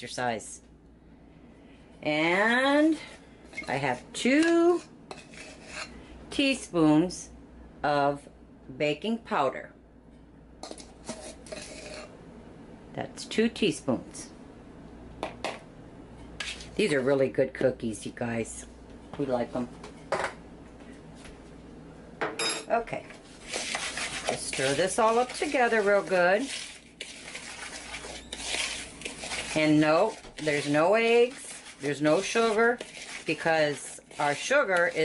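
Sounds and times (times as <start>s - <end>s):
spoon scraping dry crumbs in bowl: 3.6s - 6.0s, 10.6s - 12.1s, 16.4s - 16.9s, 23.3s - 35.0s
metal spoon clinking and scraping: 10.6s - 12.1s.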